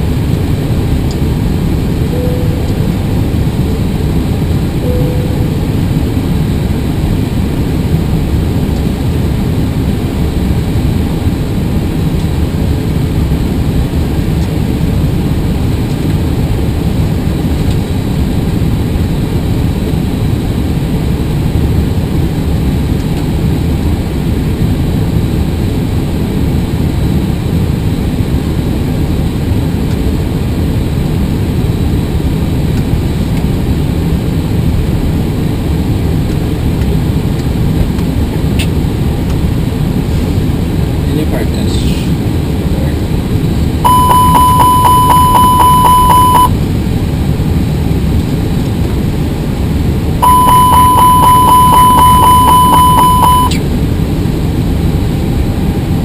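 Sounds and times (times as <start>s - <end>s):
low cockpit rush: 0.0s - 25.4s, 27.7s - 56.0s
rapidly repeating alarm chime: 43.8s - 46.5s, 50.2s - 53.6s.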